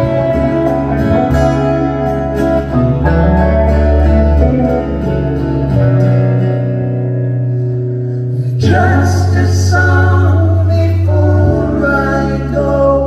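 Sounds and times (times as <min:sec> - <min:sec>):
acoustic guitar chords: 0:00.0 - 0:13.0
electric guitar chords: 0:00.0 - 0:13.0.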